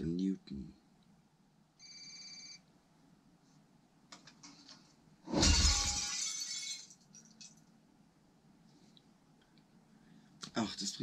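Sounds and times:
mirror crashing: 5.2s - 6.9s
glass shattering: 5.3s - 7.4s.

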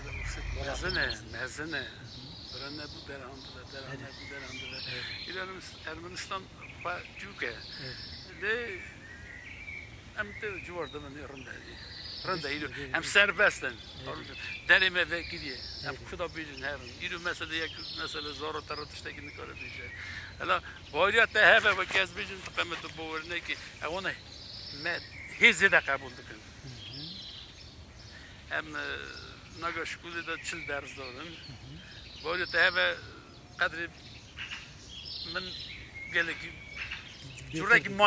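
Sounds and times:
man speaking: 0.0s - 9.0s, 10.2s - 24.2s, 24.8s - 27.2s, 28.5s - 33.9s, 35.3s - 36.6s, 37.2s - 38.0s
outdoor background noise: 0.0s - 38.0s.

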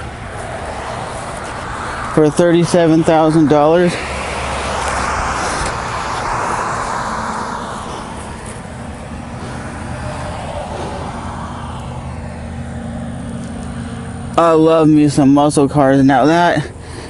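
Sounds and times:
steady low traffic drone: 0.0s - 17.0s
vehicle passing: 0.0s - 17.0s.

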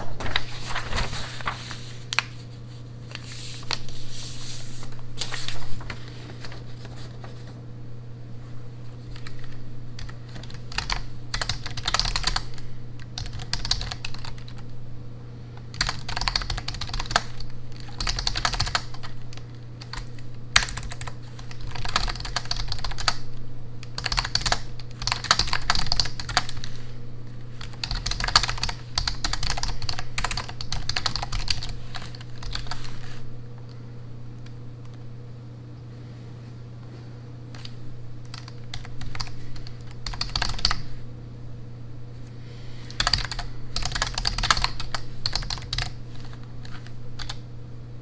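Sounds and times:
steady low hum: 0.0s - 48.0s
keyboard typing: 9.1s - 14.7s, 15.7s - 23.2s, 23.8s - 26.8s, 27.5s - 33.0s, 37.5s - 40.8s, 42.9s - 47.4s.

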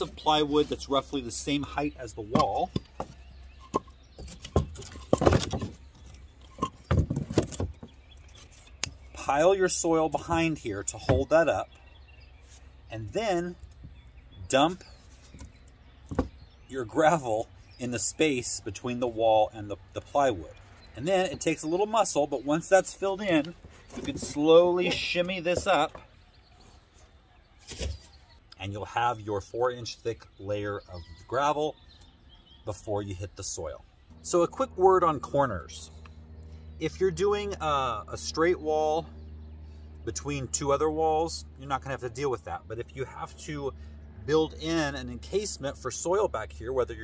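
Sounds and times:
plywood scraping rustles: 2.3s - 9.2s, 14.8s - 16.5s, 22.8s - 28.2s.

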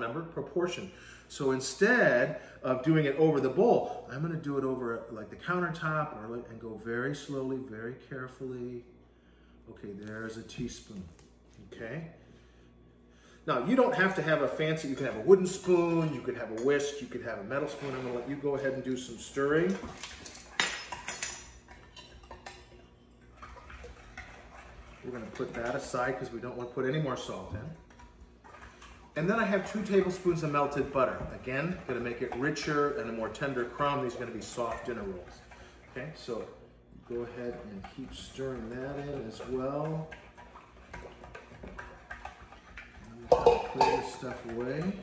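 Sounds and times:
spoon clinking in glass bowl: 43.3s - 44.2s.

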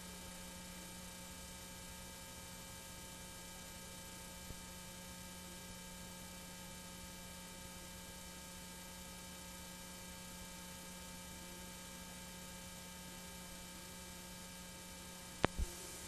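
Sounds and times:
faint electrical hum with hiss: 0.0s - 16.0s.

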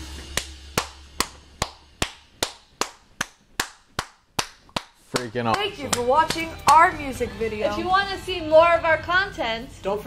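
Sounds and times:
person clapping hands: 0.1s - 6.8s.

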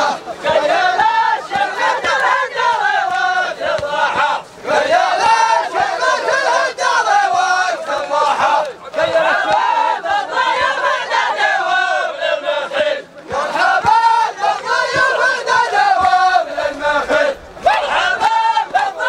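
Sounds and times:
men chanting together: 0.0s - 19.0s.

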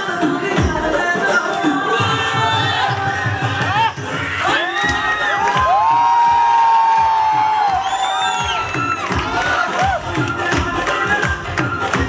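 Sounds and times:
bhangra music with drum beat: 0.0s - 12.0s.

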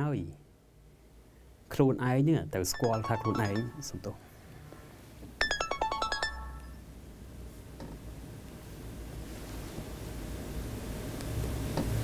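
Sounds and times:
phone ringtone chime notes: 2.7s - 4.2s, 5.4s - 6.8s.

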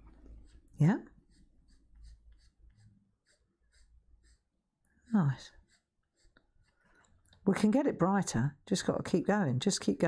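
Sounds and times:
coloured pencil scratching on paper: 0.0s - 7.9s.

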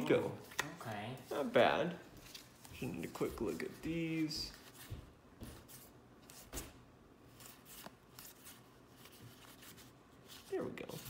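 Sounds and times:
trading cards rustling: 7.3s - 11.0s.

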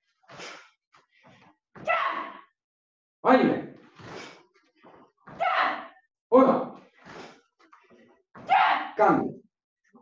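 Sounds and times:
sharp forceful exhalations: 0.3s - 0.8s, 4.0s - 4.4s, 7.0s - 7.5s.

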